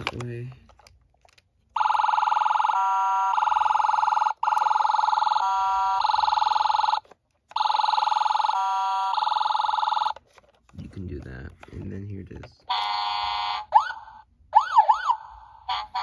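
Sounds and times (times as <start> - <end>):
toy electronic siren warbling: 12.7 - 16.0.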